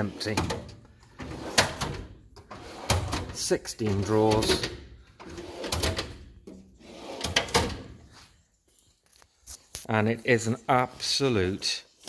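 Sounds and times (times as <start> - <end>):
metal drawer sliding on runners: 0.0 - 8.0.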